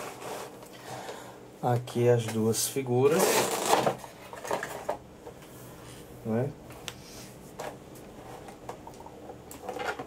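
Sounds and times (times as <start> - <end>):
plastic packaging clicks and rustles: 3.1 - 5.0, 8.5 - 10.0.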